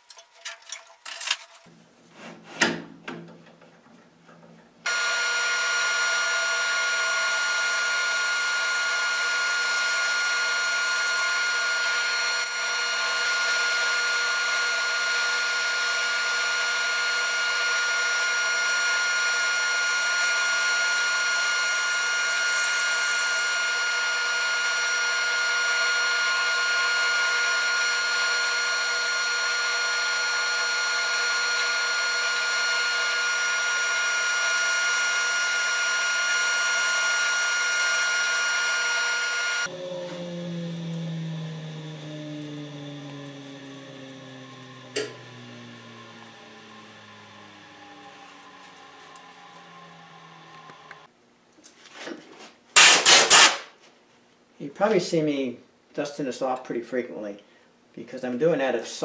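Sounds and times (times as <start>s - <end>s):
band saw cutting wood: 4.9s - 51.1s.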